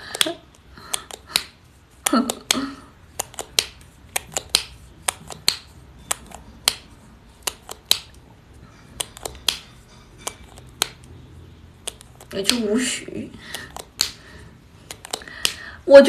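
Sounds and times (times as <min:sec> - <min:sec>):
sharp irregular clicks: 0:00.0 - 0:08.2, 0:13.5 - 0:14.2, 0:14.8 - 0:15.7.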